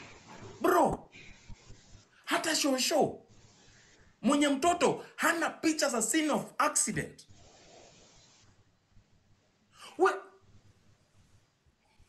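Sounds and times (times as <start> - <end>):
man shouting: 9.9 - 10.3.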